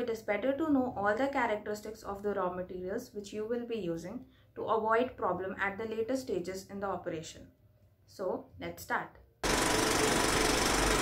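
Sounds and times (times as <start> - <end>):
rapid rattling buzz: 9.4 - 11.0.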